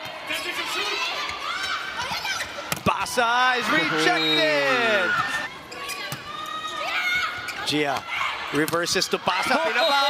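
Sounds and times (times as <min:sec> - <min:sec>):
arena crowd voices: 0:00.0 - 0:10.0.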